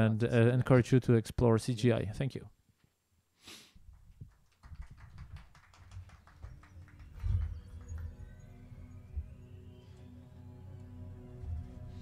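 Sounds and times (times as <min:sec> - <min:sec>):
scattered applause: 0:04.0 - 0:09.1.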